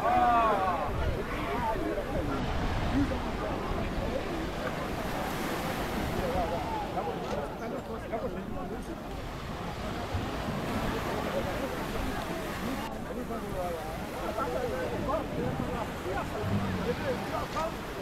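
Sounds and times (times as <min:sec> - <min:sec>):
wind buffeting microphone: 0:00.0 - 0:07.6
distant voices chattering: 0:00.0 - 0:18.0
surf at shore: 0:00.0 - 0:18.0.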